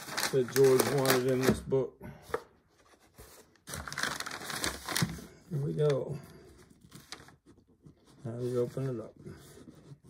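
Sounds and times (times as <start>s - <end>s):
packing paper rustling: 0.0s - 1.7s, 2.8s - 8.9s.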